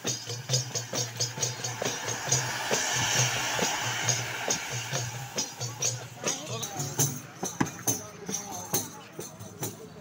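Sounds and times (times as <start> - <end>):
rhythmic percussion music: 0.0 - 10.0
firework hissing: 0.7 - 6.2.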